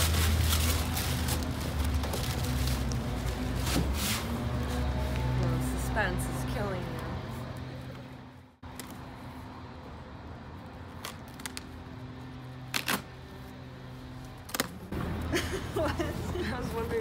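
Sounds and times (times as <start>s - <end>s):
packing tape ripping off cardboard: 10.9s - 11.8s, 12.7s - 13.2s.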